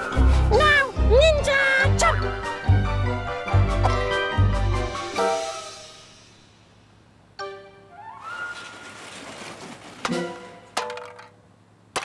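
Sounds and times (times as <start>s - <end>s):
background music: 0.0s - 6.6s, 7.4s - 8.7s.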